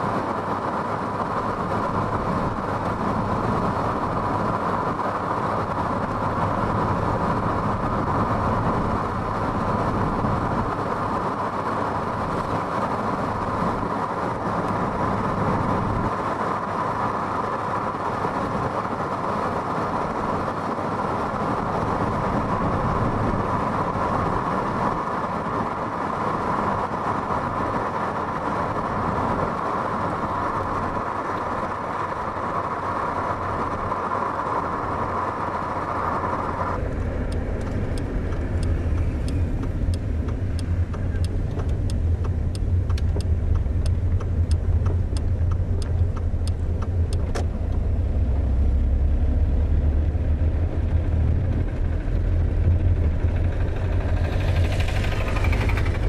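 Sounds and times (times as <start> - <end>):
vehicle engine rumbling: 0.0 - 56.0
regular ticks: 36.8 - 47.9
brief rising sound: 53.6 - 56.0.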